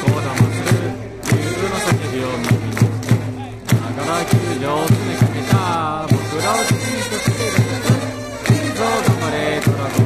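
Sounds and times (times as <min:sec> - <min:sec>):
cheering drum beating: 0:00.0 - 0:10.0
crowd chanting in unison: 0:00.0 - 0:10.0.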